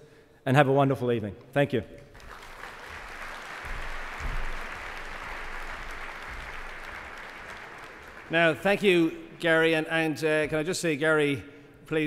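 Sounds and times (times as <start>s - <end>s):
audience applauding: 2.1s - 9.1s
low thuds: 3.7s - 4.7s.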